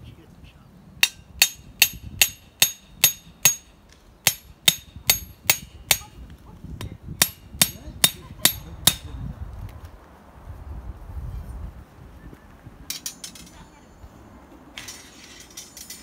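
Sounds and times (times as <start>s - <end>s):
hatchet striking metal rod: 1.0s - 6.2s, 6.8s - 9.1s.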